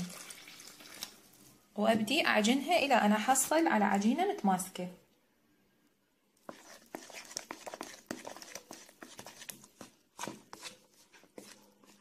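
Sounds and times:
hand mixing wet dough in bowl: 6.4 - 12.0.

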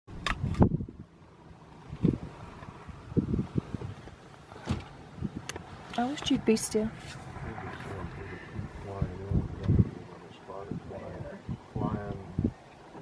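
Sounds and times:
wind buffeting microphone: 0.1 - 1.2, 1.8 - 12.9.

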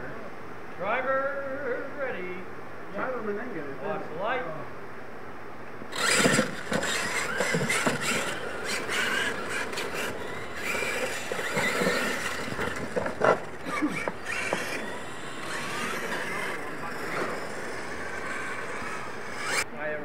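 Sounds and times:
tyres scrabbling on dirt: 5.9 - 19.6
electric motors whining: 5.9 - 19.7.

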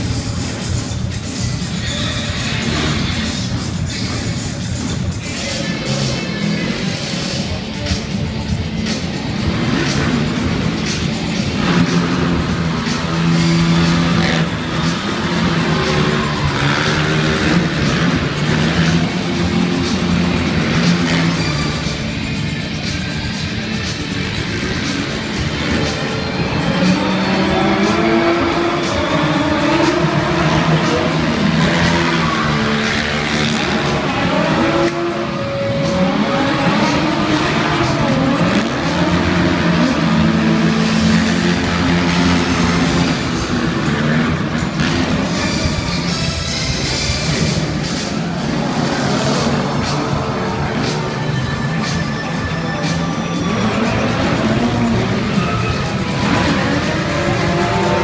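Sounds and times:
loud show music: 0.0 - 58.0
motorcycle engines revving: 0.0 - 58.0
van driving: 0.0 - 58.0.

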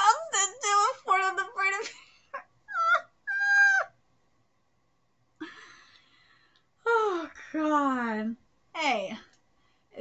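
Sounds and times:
woman squealing with excitement: 2.7 - 3.9.

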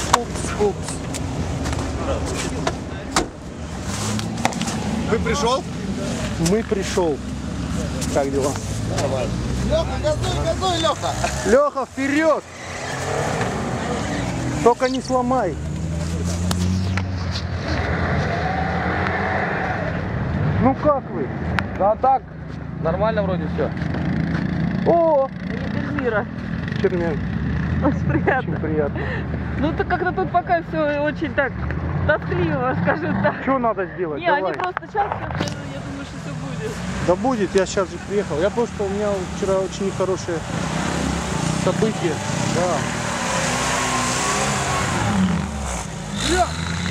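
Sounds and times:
off-road vehicle engine running: 35.0 - 46.9.

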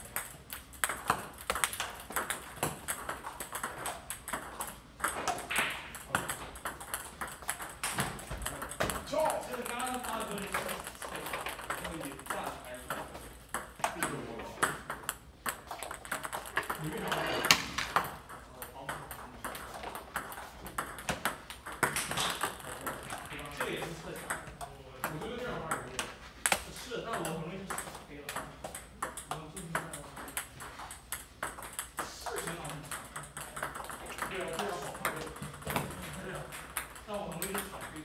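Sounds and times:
table tennis balls clicking: 0.0 - 38.0.

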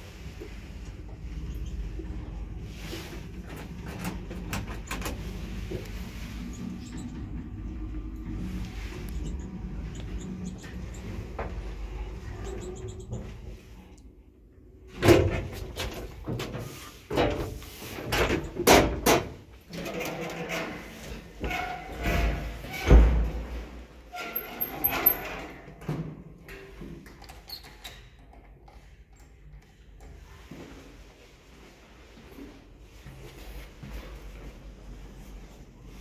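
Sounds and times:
elevator doors knocking and clattering: 18.1 - 20.4.

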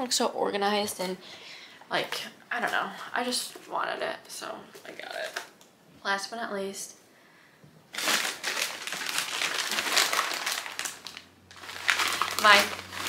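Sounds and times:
paper wrapping crinkling: 7.9 - 13.0.

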